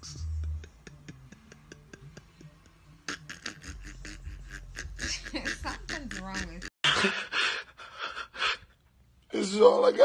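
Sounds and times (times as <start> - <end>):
man sobbing: 6.8 - 8.8.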